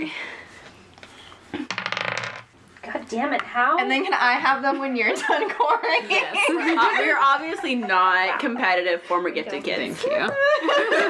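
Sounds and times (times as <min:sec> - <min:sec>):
die rattling on a table: 0:01.6 - 0:02.5.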